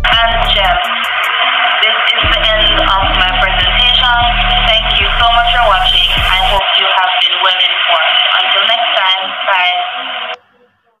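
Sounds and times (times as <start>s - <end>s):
person speaking over radio: 0.0s - 11.0s.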